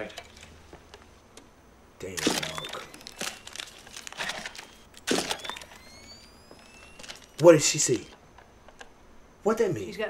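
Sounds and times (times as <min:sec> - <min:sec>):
crinkling rustling noise: 0:02.2 - 0:08.8
faint high rising tones: 0:02.4 - 0:08.2.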